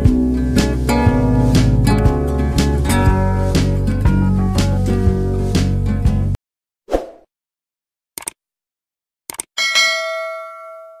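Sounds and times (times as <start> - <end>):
quick clicks: 8.2 - 8.4, 9.3 - 9.5
notification bell ding: 9.6 - 11.0.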